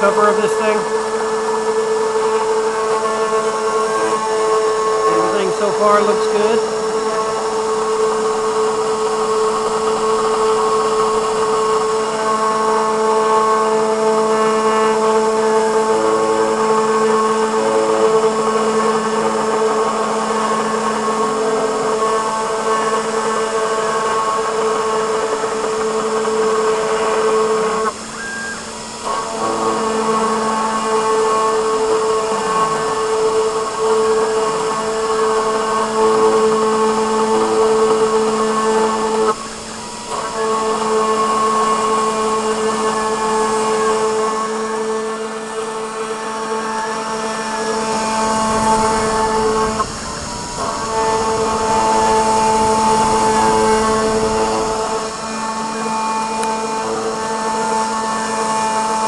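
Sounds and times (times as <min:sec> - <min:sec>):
cnc router spindle whine: 0:00.0 - 0:59.0
stepper motor tones: 0:00.0 - 0:59.0.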